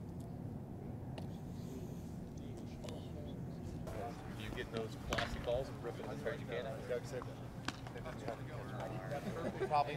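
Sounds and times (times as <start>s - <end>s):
men talking: 2.1s - 9.9s.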